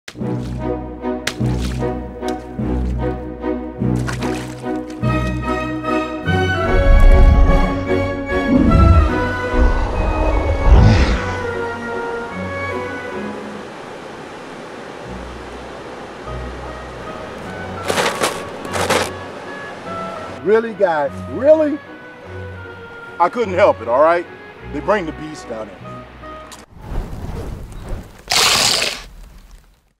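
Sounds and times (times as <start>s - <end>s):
background music with sustained bass: 0.1s - 26.5s.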